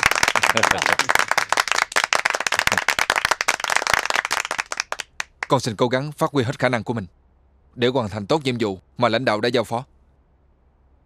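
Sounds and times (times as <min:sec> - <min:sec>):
people applauding: 0:00.0 - 0:05.6.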